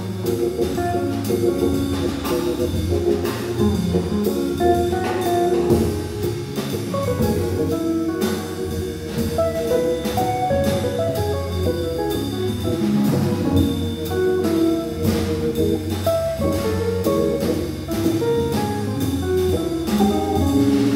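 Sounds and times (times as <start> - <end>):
drum kit with cymbals: 0.0 - 20.9
organ: 0.0 - 20.9.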